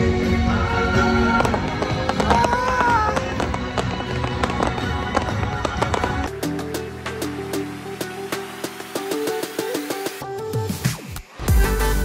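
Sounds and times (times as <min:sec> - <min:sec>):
loud music: 0:00.0 - 0:12.0
fireworks popping and crackling: 0:01.4 - 0:10.2.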